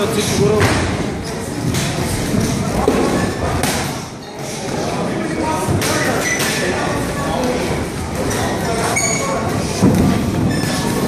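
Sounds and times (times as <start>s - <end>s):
busy gym background noise: 0.0s - 11.0s.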